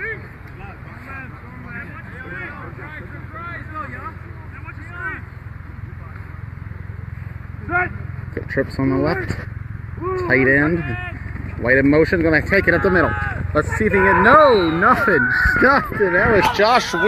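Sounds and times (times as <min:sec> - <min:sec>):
players talking and calling out: 0:00.0 - 0:17.0
steady low rumble: 0:00.1 - 0:16.6.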